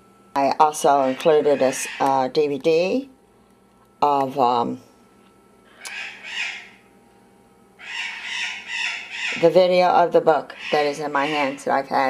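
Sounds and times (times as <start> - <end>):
harsh bird squawks: 1.0 - 2.2, 5.7 - 6.9, 7.8 - 9.6, 10.5 - 11.8.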